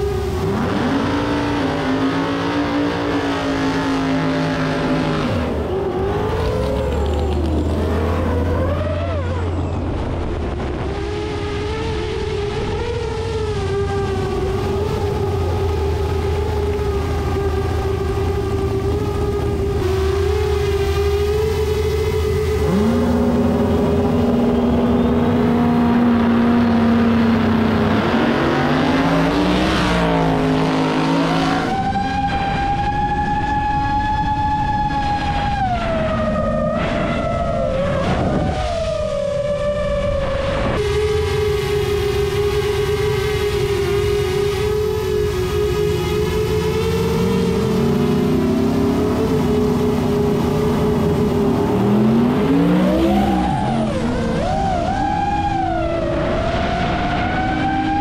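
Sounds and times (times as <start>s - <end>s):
engine whine: 0.0s - 58.0s.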